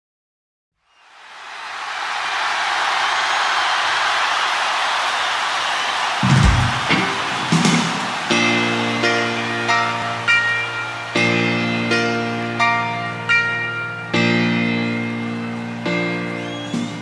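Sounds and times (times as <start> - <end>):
stadium crowd cheering: 0.8 - 17.0
piano notes: 6.2 - 17.0.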